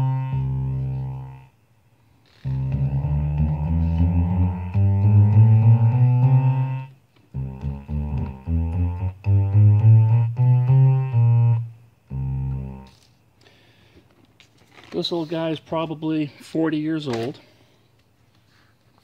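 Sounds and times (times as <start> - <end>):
analog bass synthesizer notes: 0.0 - 1.5, 2.4 - 13.1.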